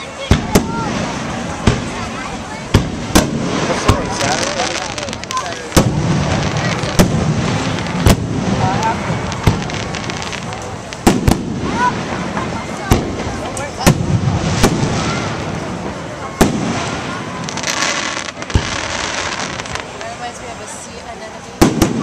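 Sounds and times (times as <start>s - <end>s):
fireworks bursting booms: 0.0s - 20.3s, 21.5s - 22.0s
fireworks crackling: 0.0s - 22.0s.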